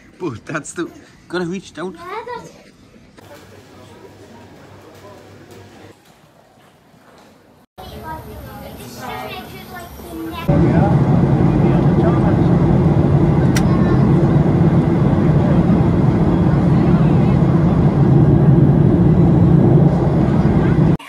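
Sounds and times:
jet airliner cabin drone: 7.8 - 21.0.

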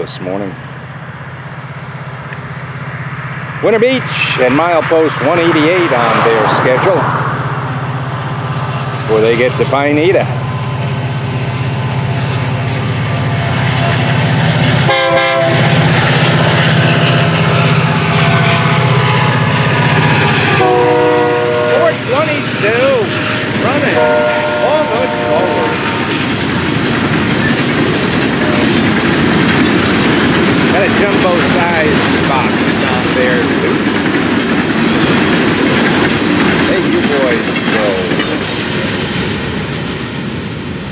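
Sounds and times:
diesel locomotive engine running: 0.0 - 40.9
train wheels clattering: 11.4 - 40.9
locomotive horn blasts: 14.9 - 15.8, 20.5 - 22.2, 23.6 - 26.1.

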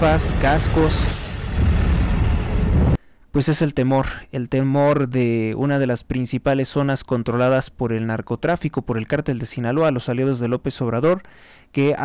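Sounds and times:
traffic hiss: 0.0 - 3.0
truck engine rumble: 0.0 - 3.0.

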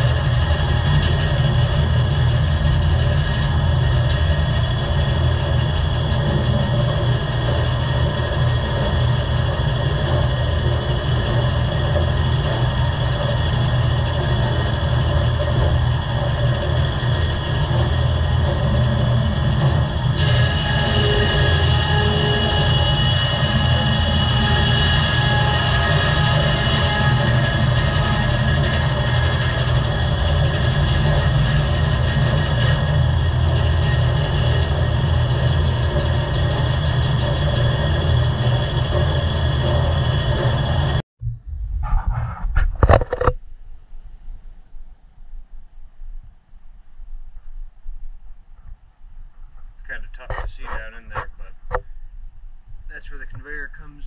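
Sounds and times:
saw blade whining: 0.0 - 41.0
sawmill machinery drone: 0.0 - 41.0
high bright whine: 0.0 - 54.0.

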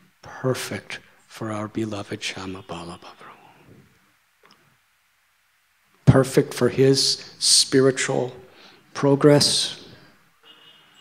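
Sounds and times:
man's voice: 0.2 - 3.5, 9.0 - 10.0.

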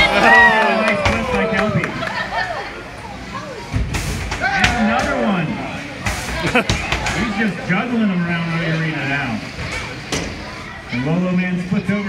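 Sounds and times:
voices exclaiming: 0.0 - 3.7.

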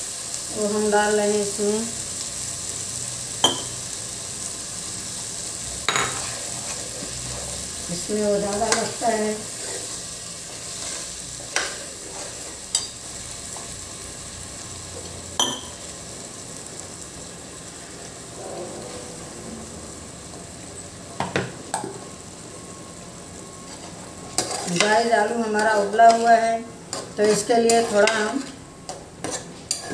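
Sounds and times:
food sizzling in oil: 0.0 - 29.9.

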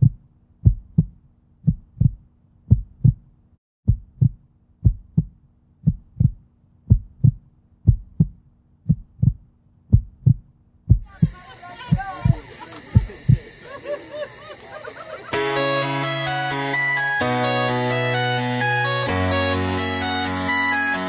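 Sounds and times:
heartbeat thumps: 0.0 - 3.3, 3.9 - 13.6.

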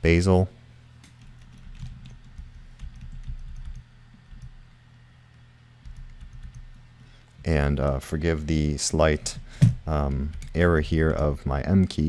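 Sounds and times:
low steady hum: 0.0 - 12.0
computer keyboard typing: 1.0 - 4.6, 5.8 - 7.0, 9.9 - 11.4.

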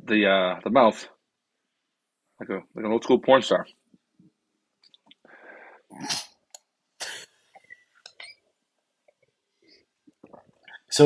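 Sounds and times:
lip smacks and mouth clicks: 4.8 - 5.3
cough-like breath bursts: 7.0 - 7.4.

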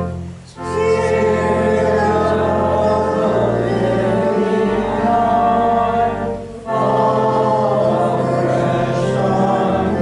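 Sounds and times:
congregation singing a hymn: 0.0 - 10.0.

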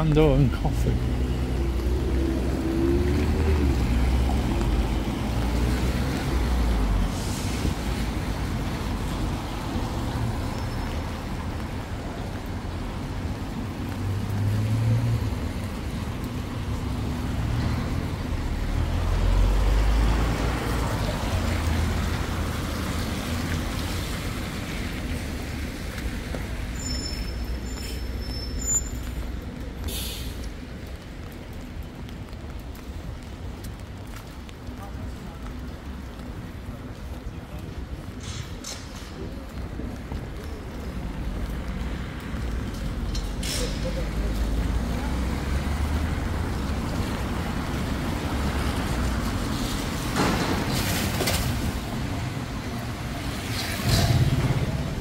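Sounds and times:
tyres swishing on wet road: 0.0 - 55.0
vehicle engine rumble: 0.0 - 55.0.

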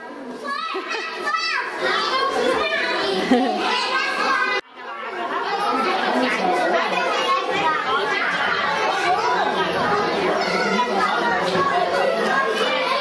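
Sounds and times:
many people talking: 0.0 - 13.0.

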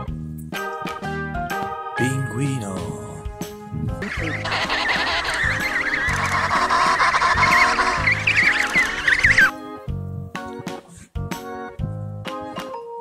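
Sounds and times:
background music: 0.0 - 13.0
penguins calling: 4.0 - 9.5.

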